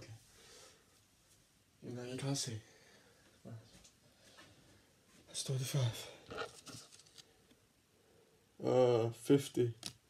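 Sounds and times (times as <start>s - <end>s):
playing card clicks and rustles: 6.3s - 7.4s.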